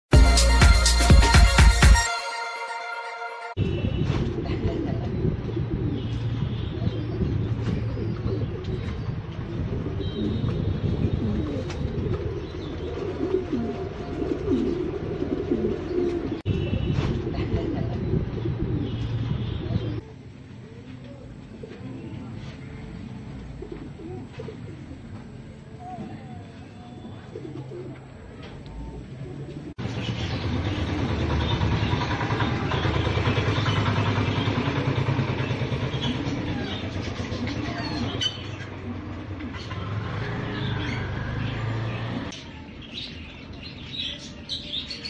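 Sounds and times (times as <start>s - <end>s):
pigeons cooing: 3.9s - 20.0s, 23.4s - 42.3s.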